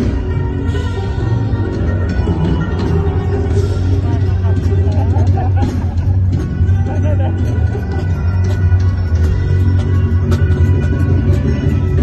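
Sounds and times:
heavy bass line: 0.0 - 12.0
rock band over loudspeakers: 0.0 - 12.0.

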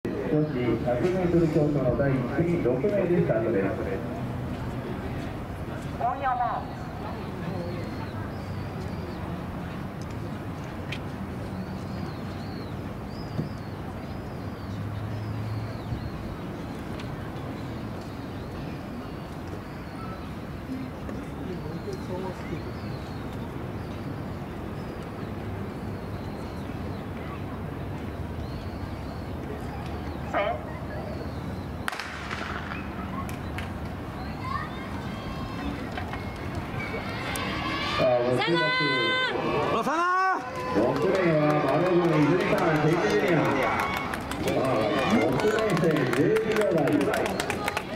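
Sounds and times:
murmur of distant voices: 0.0 - 47.9
sharp cracks: 31.8 - 33.8
starting gun shot echoing: 31.9 - 32.8.

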